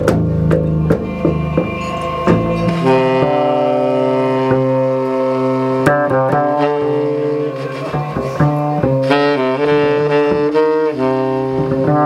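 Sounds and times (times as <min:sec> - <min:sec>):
plucked double bass: 0:00.0 - 0:12.0
saxophone long low note: 0:00.5 - 0:12.0.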